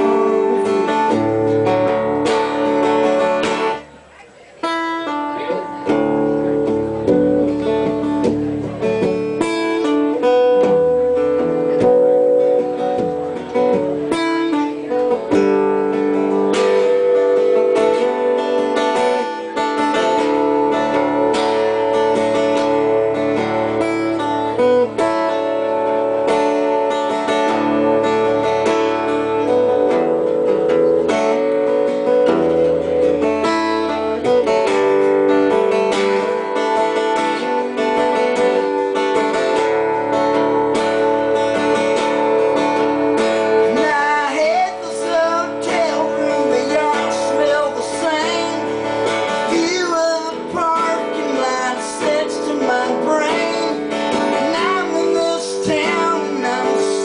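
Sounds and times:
acoustic guitar strumming: 0.0 - 57.0.

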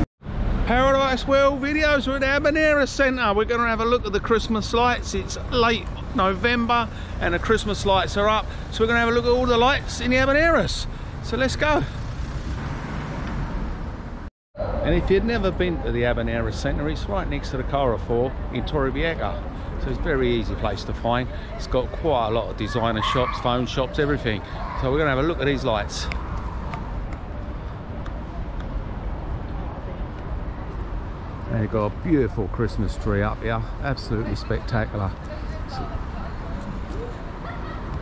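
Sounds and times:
road traffic: 0.0 - 38.0.

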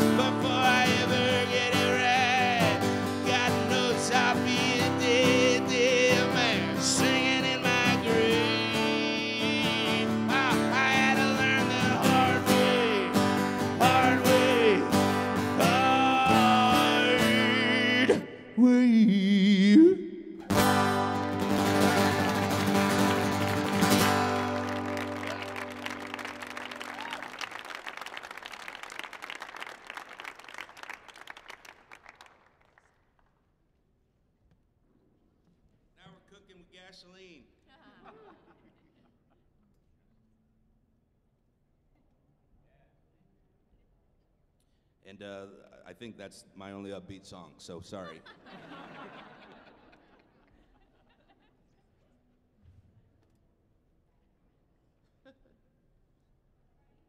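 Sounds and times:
man singing wordlessly: 0.0 - 20.4
acoustic guitar strumming: 0.0 - 26.8.

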